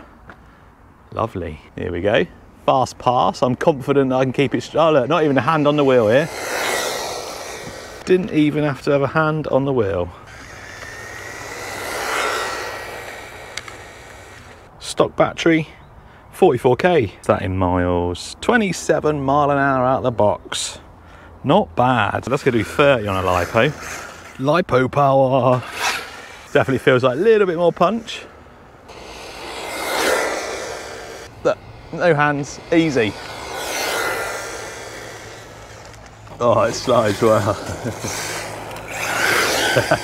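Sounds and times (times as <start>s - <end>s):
tyre noise on tarmac: 3.9s - 14.7s, 21.8s - 40.0s
rc car motor whine: 4.8s - 9.2s, 9.8s - 14.7s, 22.2s - 24.7s, 25.5s - 40.0s.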